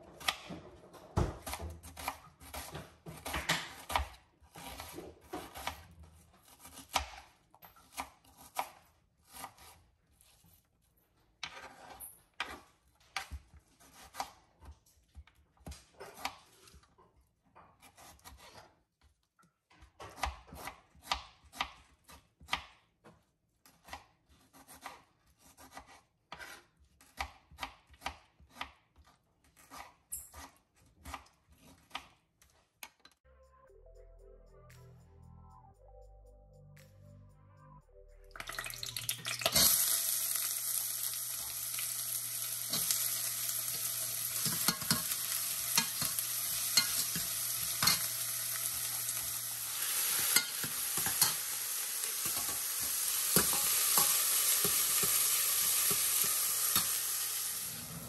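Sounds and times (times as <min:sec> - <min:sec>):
knife chopping on wooden board: 0:00.1 - 0:05.8.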